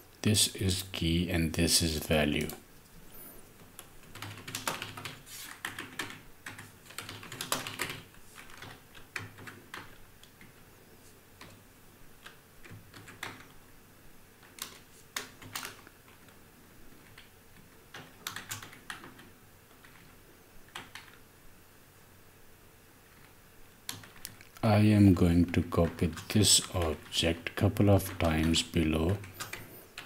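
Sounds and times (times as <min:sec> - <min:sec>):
typing on computer keyboard: 0:03.8 - 0:10.5, 0:12.2 - 0:13.6, 0:14.4 - 0:16.3, 0:17.0 - 0:20.1, 0:20.7 - 0:21.2, 0:23.9 - 0:24.5, 0:25.8 - 0:30.0.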